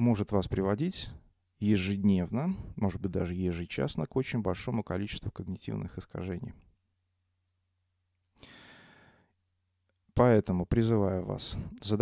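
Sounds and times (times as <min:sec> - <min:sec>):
man breathing into microphone: 0:08.4 - 0:09.3.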